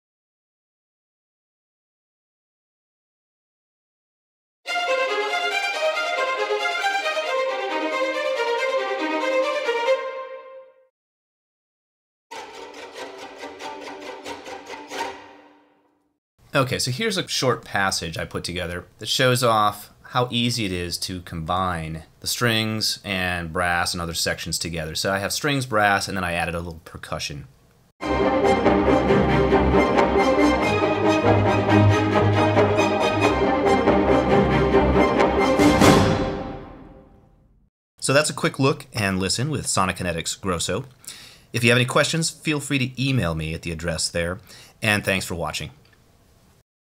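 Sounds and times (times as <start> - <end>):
orchestral strings repeated notes: 4.7 - 10.8, 12.3 - 16.0, 28.0 - 37.2.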